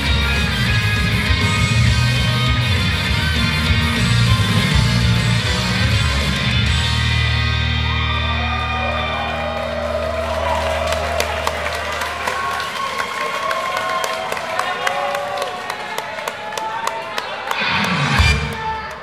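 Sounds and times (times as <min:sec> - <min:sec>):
pop backing track: 0:00.0 - 0:07.5
audience cheering and shouting: 0:00.0 - 0:19.0.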